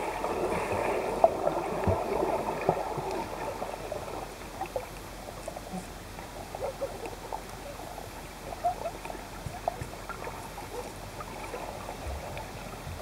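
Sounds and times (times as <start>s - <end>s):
muffled underwater water wash: 0.0s - 13.0s.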